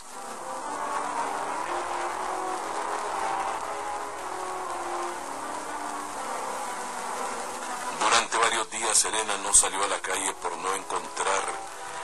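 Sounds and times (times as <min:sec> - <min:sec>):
insect-like buzzing ambience: 0:00.0 - 0:12.0.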